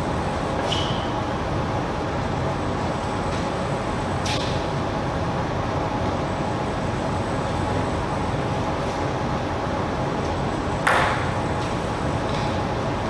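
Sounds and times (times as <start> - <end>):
indoor table tennis hall noise: 0.0 - 1.3.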